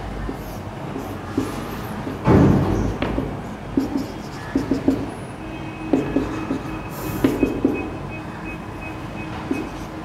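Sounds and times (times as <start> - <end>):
whiteboard marker squeaking: 0.2 - 2.2, 3.7 - 8.1, 9.2 - 10.0.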